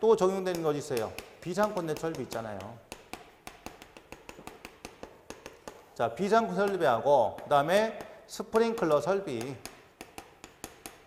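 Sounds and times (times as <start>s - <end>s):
chalk tapping and scratching: 0.0s - 11.0s.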